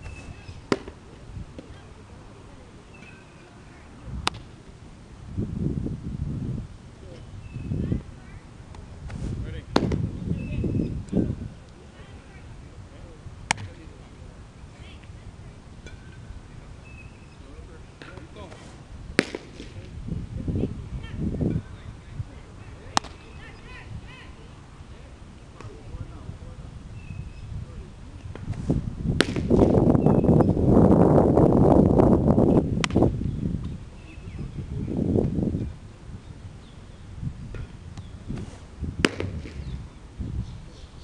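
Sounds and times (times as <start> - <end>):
baseball smacking into leather mitt: 0.7 - 1.0, 4.2 - 4.5, 8.7 - 10.1, 13.5 - 13.8, 18.0 - 19.9, 22.9 - 23.2, 29.2 - 29.8, 32.8 - 33.0, 37.5 - 39.8.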